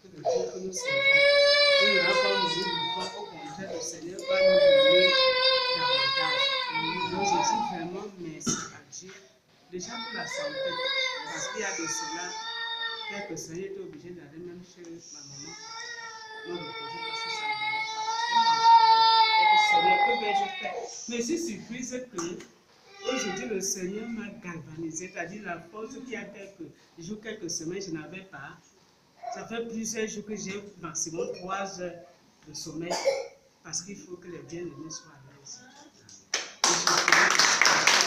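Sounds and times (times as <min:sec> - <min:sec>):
audience applauding: 0:36.4 - 0:38.0.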